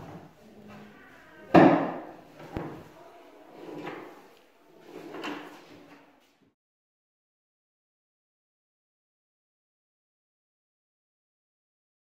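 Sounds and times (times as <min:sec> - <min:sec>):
wooden door rubbing and sliding: 0:03.5 - 0:06.0.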